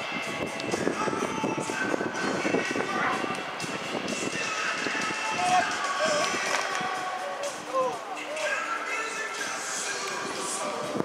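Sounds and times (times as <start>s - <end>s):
overlapping chatter: 1.0s - 11.0s.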